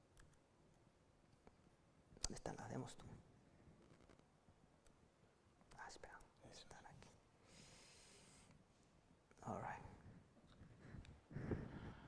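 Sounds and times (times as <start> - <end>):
soft hiss: 0.0 - 12.0
faint whispered voice: 2.2 - 3.2, 5.7 - 7.2, 9.4 - 10.1.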